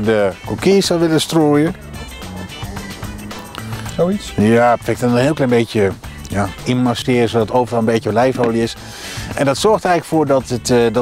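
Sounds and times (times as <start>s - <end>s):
background music low notes: 0.0s - 11.0s.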